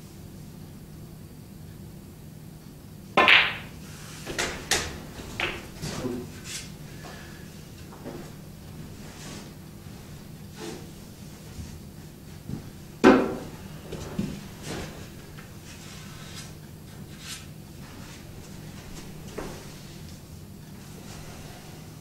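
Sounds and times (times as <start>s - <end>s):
sharp ball clack: 3.2s - 3.7s, 4.4s - 5.7s
snooker balls knocking and clicking: 3.2s - 8.8s, 12.5s - 15.5s.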